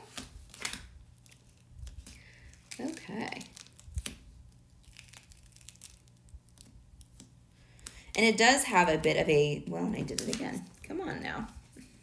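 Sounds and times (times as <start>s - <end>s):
vinyl crinkling and crackling: 0.0s - 12.0s.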